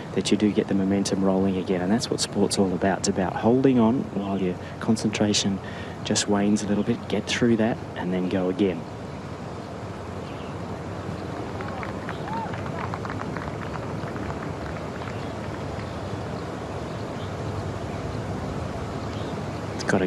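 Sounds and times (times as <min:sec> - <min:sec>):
outdoor background noise: 0:00.0 - 0:20.0.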